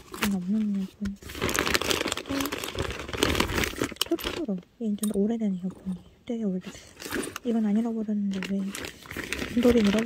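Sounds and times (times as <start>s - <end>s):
hands rummaging in bag: 0.0s - 4.6s, 6.6s - 10.0s.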